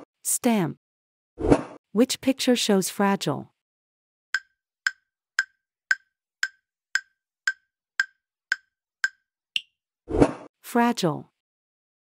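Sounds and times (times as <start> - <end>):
countdown timer ticks: 4.4 - 9.7.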